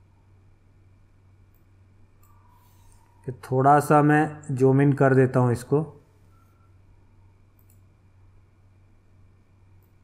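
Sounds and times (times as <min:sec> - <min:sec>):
low steady hum: 0:00.0 - 0:10.0
computer mouse click: 0:01.5 - 0:03.1, 0:07.5 - 0:07.9, 0:09.8 - 0:10.0.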